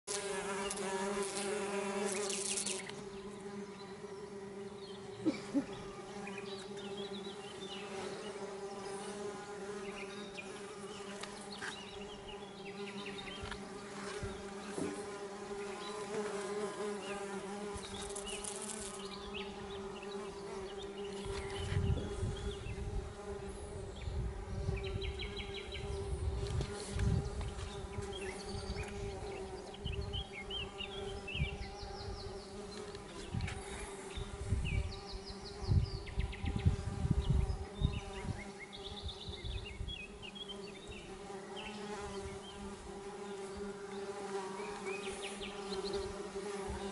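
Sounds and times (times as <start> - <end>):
bees buzzing: 0.1 - 46.9.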